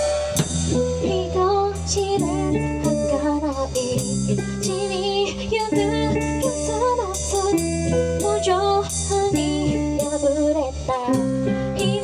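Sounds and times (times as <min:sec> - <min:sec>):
pop-rock band playing: 0:00.0 - 0:12.0
woman singing: 0:00.9 - 0:12.0.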